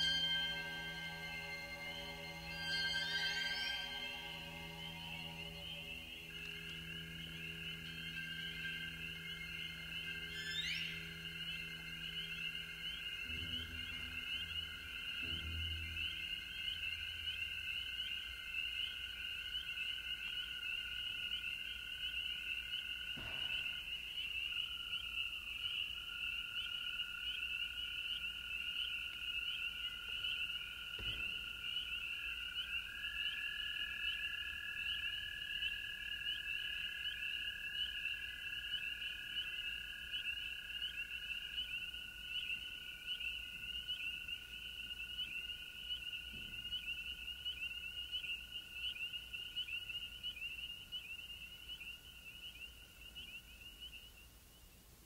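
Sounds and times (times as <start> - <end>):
higher held tone: 0.0 - 12.8
low held tone: 0.0 - 17.3
tree frogs peeping chorus: 0.0 - 54.8.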